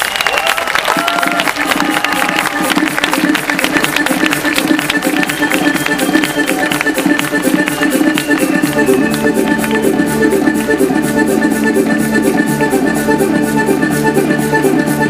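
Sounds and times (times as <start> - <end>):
quick steady beat: 0.8 - 15.0
accordion playing dance tune: 1.0 - 15.0.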